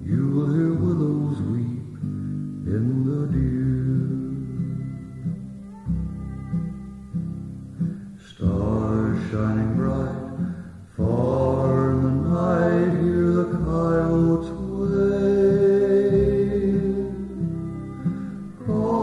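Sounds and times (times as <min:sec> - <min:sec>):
acoustic guitar picking: 0:00.0 - 0:19.0
violin melody: 0:03.6 - 0:09.1, 0:12.2 - 0:19.0.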